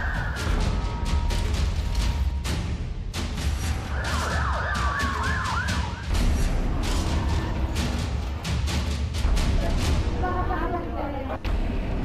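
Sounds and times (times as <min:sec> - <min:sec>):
emergency sirens wailing: 0:03.8 - 0:06.1.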